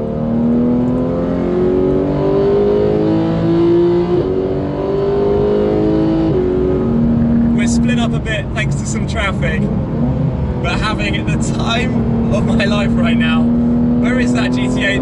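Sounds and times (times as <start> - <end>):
car engine accelerating: 0.0 - 15.0.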